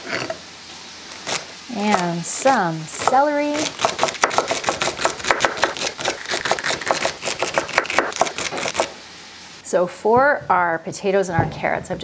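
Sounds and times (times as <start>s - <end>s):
knife chopping on cutting board: 3.0s - 8.9s.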